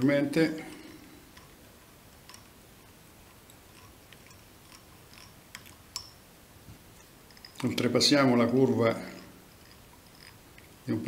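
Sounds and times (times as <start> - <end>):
small metal clicks and ticks: 0.6 - 1.6, 2.2 - 6.2, 7.0 - 10.8.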